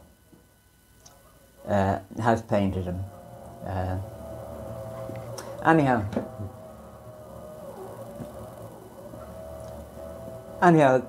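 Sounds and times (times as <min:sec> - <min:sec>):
faint thin whine: 0:00.0 - 0:11.0
low hum: 0:00.0 - 0:11.0.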